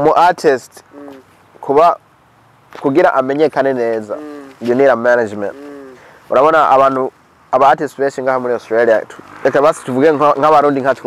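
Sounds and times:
man speaking: 0.0 - 2.0, 2.8 - 11.0.

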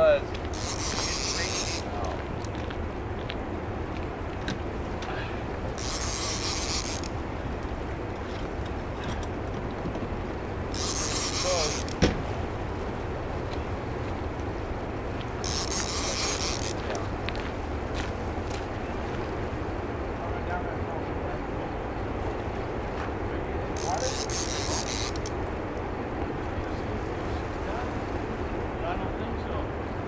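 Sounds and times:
churning water rushing: 0.0 - 30.0
fishing reel ratcheting: 0.5 - 1.9, 5.8 - 7.1, 10.7 - 12.0, 15.4 - 17.0, 23.8 - 25.3.

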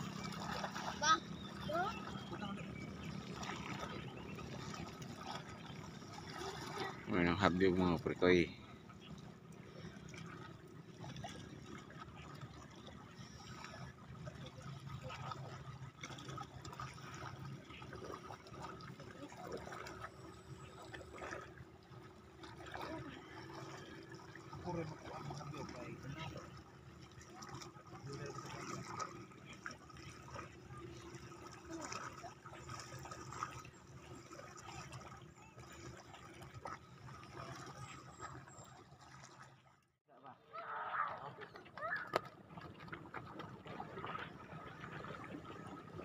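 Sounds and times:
small waves lapping on rocks: 0.0 - 39.7
quiet voices: 22.7 - 32.8.

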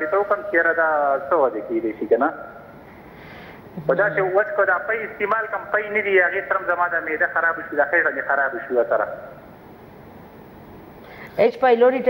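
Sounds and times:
person speaking: 3.7 - 9.4.

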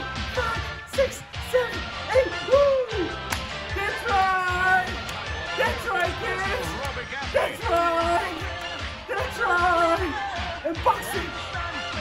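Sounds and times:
upbeat workout music: 0.0 - 12.0
man hooting: 0.2 - 3.2.

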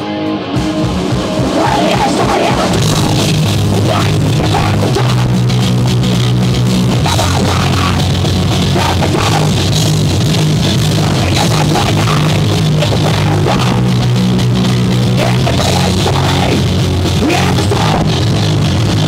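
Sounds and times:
bass guitar: 0.0 - 19.0
distorted electric guitar: 0.0 - 19.0
fast drum kit beat: 0.5 - 19.0.

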